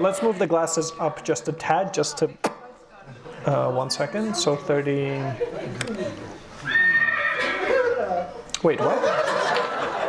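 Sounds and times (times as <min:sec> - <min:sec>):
horse whinny: 0:06.6 - 0:07.7.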